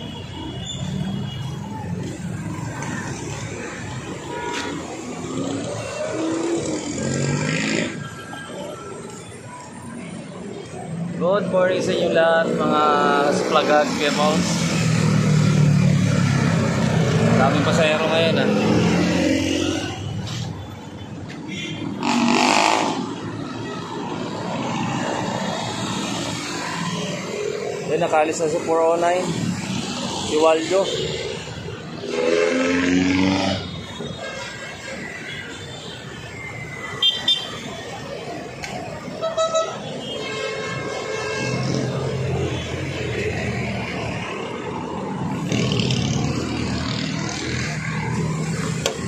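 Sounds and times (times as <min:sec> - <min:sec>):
street traffic passing: 0:00.0 - 0:49.0.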